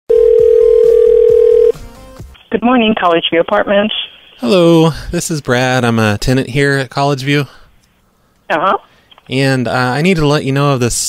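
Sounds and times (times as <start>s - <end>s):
telephone ringback tone: 0.1s - 1.8s.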